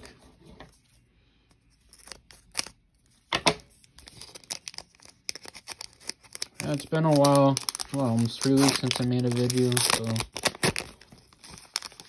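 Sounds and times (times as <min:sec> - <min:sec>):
foil wrapper crinkling: 0:03.8 - 0:12.0
foil wrapper ripping: 0:04.0 - 0:12.0.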